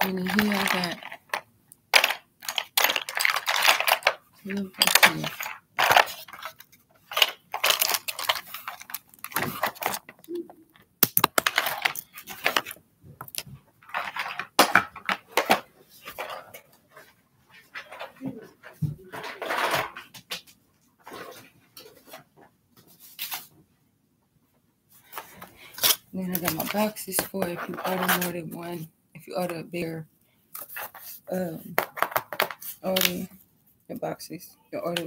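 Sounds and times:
packaging rustling: 0.0s - 10.4s, 11.0s - 16.6s
small items tapping and clinking: 0.0s - 16.6s, 25.7s - 28.4s, 31.7s - 33.3s
low voice-like sounds: 10.3s - 10.7s.

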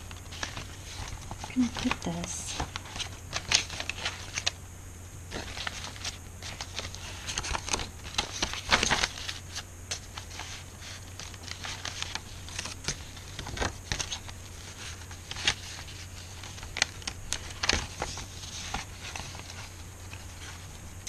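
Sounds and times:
paper rustling: 0.0s - 4.6s, 5.3s - 21.0s.

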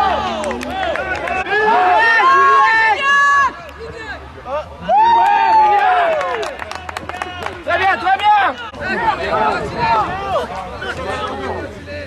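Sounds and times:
players shouting: 0.0s - 11.7s.

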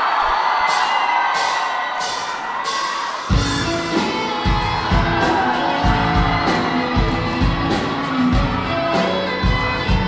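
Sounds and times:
audience cheering and whooping: 0.0s - 10.0s
drums and bass playing: 0.7s - 10.0s.

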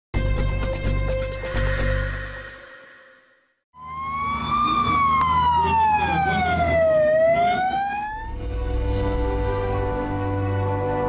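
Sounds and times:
emergency siren wailing: 3.8s - 8.5s.

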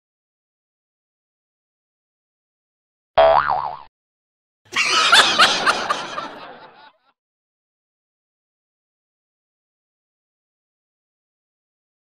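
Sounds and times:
comic boing sound effect: 3.2s - 3.9s.

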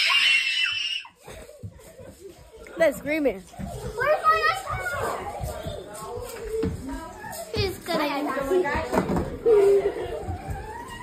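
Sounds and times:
child screaming: 0.0s - 1.2s.

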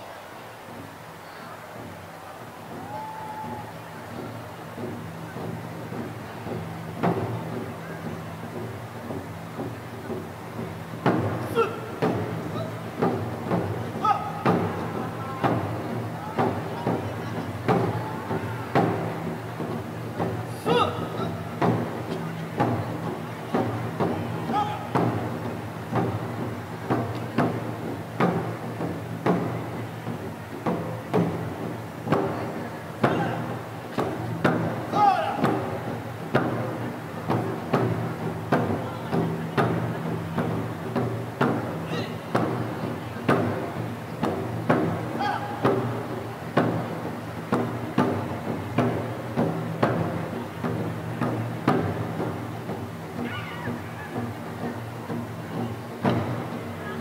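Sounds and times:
ensemble of barrel drums: 0.0s - 57.0s.

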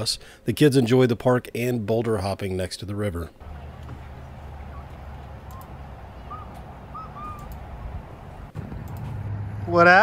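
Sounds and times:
bird chirping: 3.4s - 8.2s.

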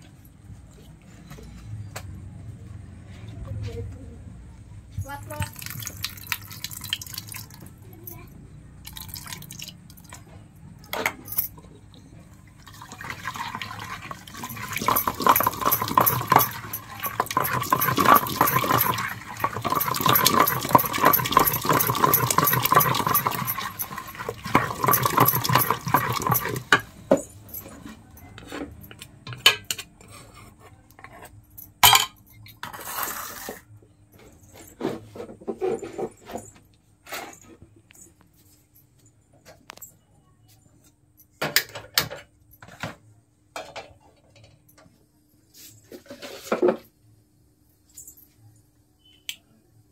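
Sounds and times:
wooden masher mashing in a pot: 13.0s - 26.9s.

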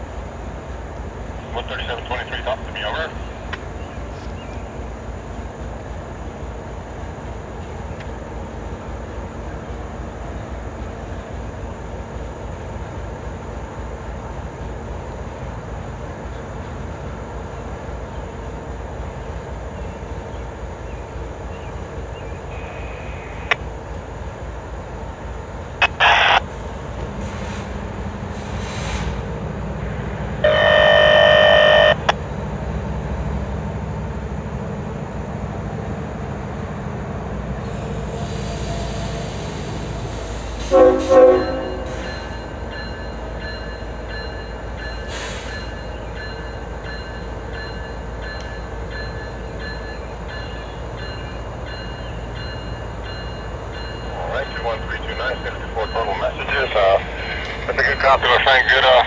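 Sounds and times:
diesel locomotive idling: 0.0s - 59.0s
hiss: 26.6s - 29.3s, 37.6s - 40.7s, 45.0s - 45.7s
locomotive horn blasts: 30.4s - 32.1s, 40.6s - 42.1s.

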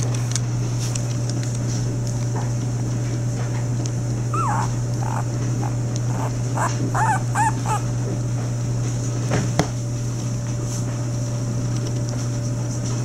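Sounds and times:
steady low hum: 0.0s - 13.0s
puppies whimpering high squeaks: 4.3s - 7.9s.

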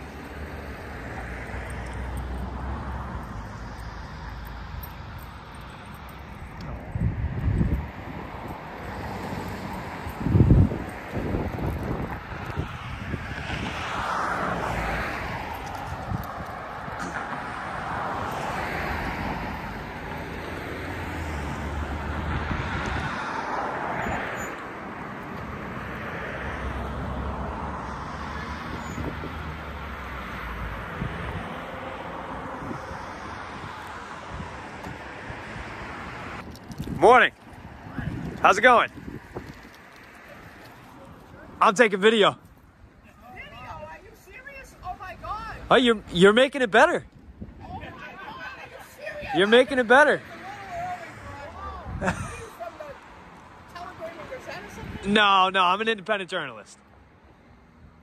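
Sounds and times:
road traffic noise: 0.0s - 58.0s
wind rumbling on microphone: 6.3s - 19.9s, 21.4s - 24.5s, 26.6s - 41.3s, 47.0s - 48.0s.

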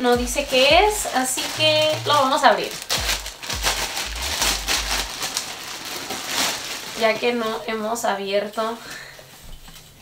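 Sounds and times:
packaging crinkling and tearing: 0.1s - 7.6s.

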